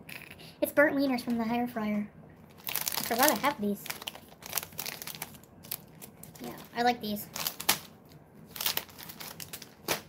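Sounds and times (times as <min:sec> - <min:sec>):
plastic candy bag crinkling: 0:02.5 - 0:10.0.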